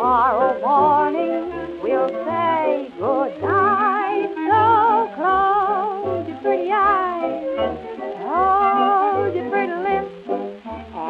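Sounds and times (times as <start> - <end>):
dance orchestra on old record: 0.0 - 11.0.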